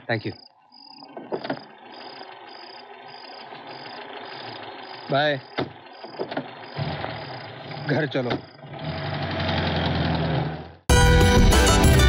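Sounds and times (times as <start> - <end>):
car engine idling: 0.0 - 10.8.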